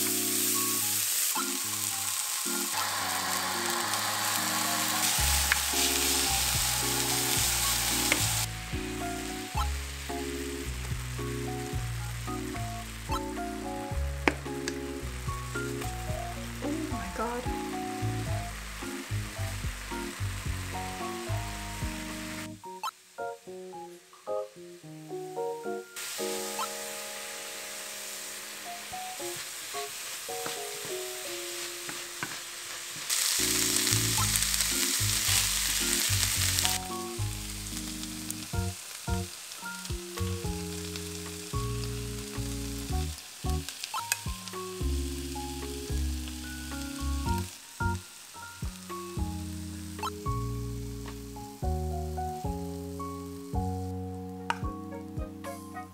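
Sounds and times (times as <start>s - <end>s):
meat sizzling in a frying pan: 0.0s - 22.6s, 26.0s - 55.7s
background music: 0.0s - 55.9s.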